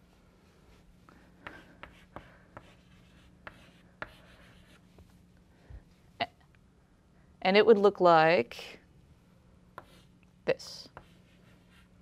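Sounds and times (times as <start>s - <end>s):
chalk scratching on chalkboard: 1.4s - 4.9s, 9.8s - 10.1s, 10.9s - 12.0s.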